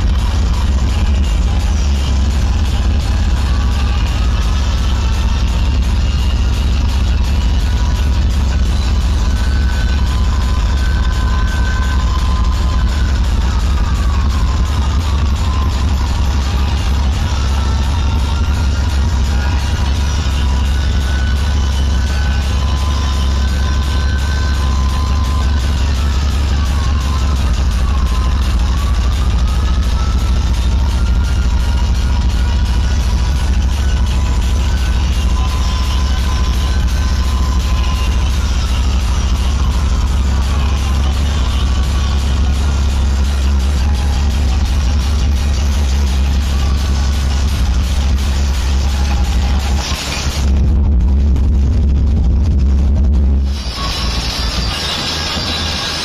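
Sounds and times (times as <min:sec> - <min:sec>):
heavy bass: 0:00.0 - 0:56.0
loud electronic dance music: 0:00.0 - 0:56.0.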